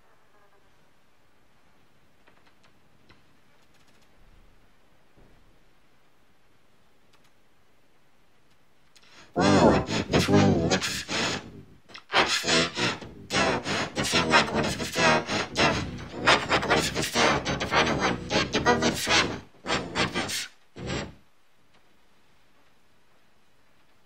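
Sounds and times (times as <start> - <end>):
person vocalizing without words: 9.2 - 21.2.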